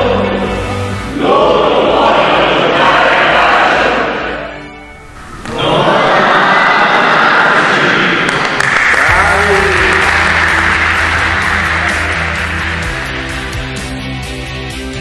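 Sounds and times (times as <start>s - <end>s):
bass-heavy music: 0.0s - 6.3s, 9.0s - 15.0s
background music: 0.0s - 15.0s
group applauding and cheering: 5.3s - 15.0s.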